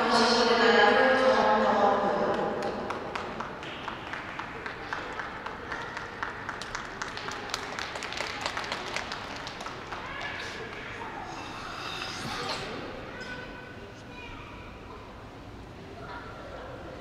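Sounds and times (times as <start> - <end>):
public-address announcement: 0.0 - 17.0
audience applause: 2.6 - 11.5.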